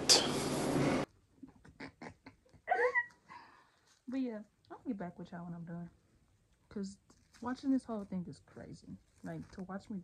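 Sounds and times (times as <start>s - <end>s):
faint clicks and rustles: 6.3s - 10.0s.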